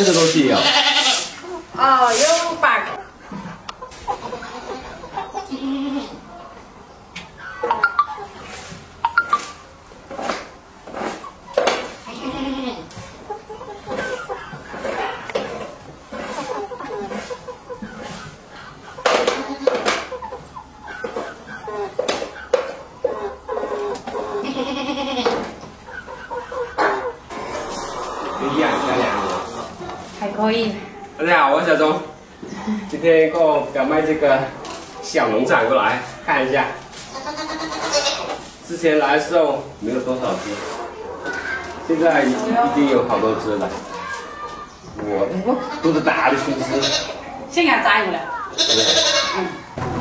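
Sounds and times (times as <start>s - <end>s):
chickens clucking: 0.0s - 50.0s
goats bleating: 0.4s - 1.3s, 4.0s - 6.3s, 12.0s - 12.9s, 24.3s - 25.5s, 37.0s - 38.4s, 45.5s - 47.3s, 48.4s - 49.8s.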